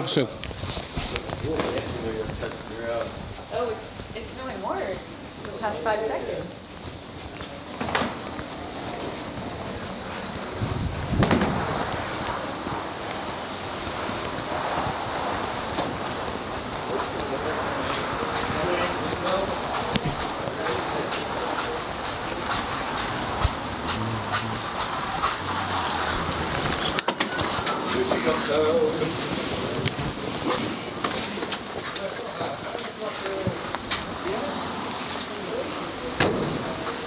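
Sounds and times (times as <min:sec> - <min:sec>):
low wind buffet: 0:00.0 - 0:37.0
wind on microphone: 0:08.2 - 0:27.0.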